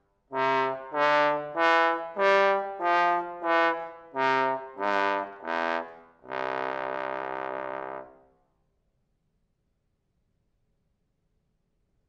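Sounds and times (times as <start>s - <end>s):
bass trombone notes: 0.3s - 8.1s.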